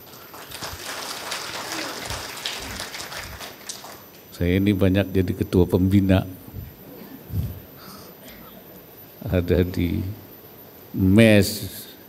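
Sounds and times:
audience applause: 0:00.0 - 0:04.2.

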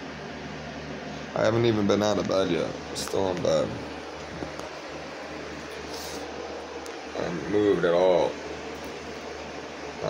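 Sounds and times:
fan hiss and hum: 0:00.0 - 0:10.0.

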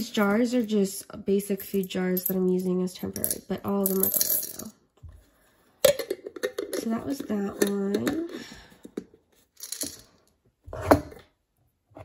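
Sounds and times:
coins rattling: 0:01.5 - 0:04.8, 0:09.6 - 0:10.2.

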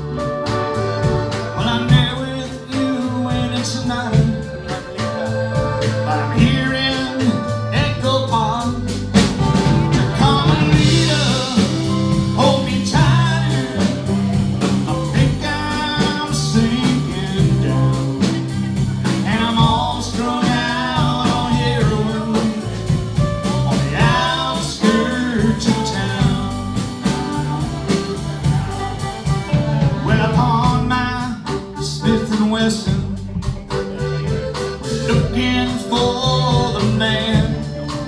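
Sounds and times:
drum kit beat: 0:00.0 - 0:38.0
live band playing: 0:00.0 - 0:38.0
melodic lead line: 0:00.0 - 0:38.0.

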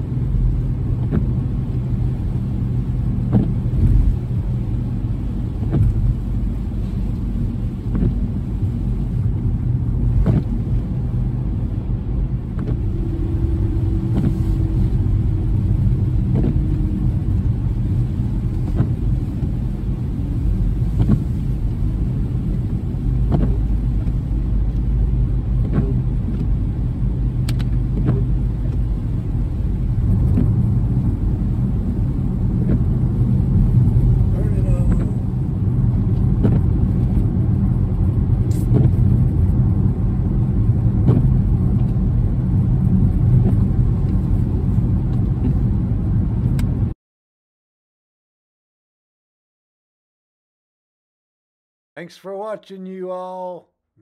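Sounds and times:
car driving on wet road: 0:00.0 - 0:47.0.

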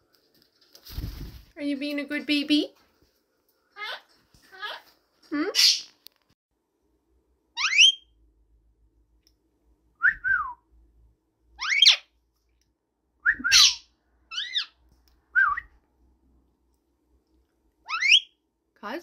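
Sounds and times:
parakeet whistled calls: 0:07.6 - 0:08.1, 0:11.6 - 0:12.1, 0:13.3 - 0:14.8, 0:17.9 - 0:18.3.

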